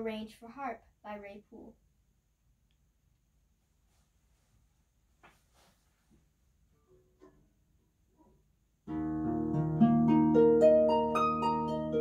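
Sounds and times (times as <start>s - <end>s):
harp playing: 8.9s - 12.0s.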